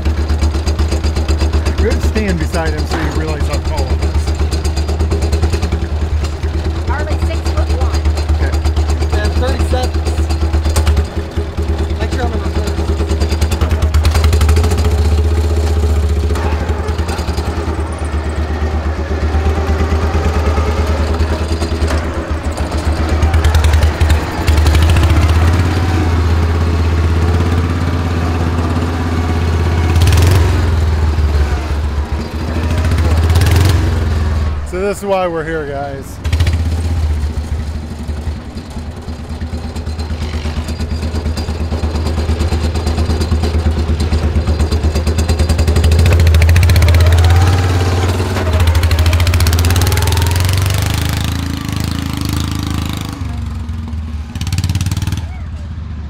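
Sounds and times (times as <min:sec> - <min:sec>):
garden tractor engine running: 0:00.0 - 0:55.3.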